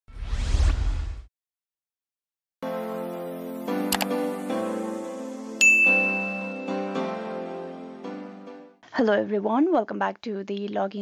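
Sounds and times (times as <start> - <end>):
whoosh with rising sweep: 0.1 - 1.3.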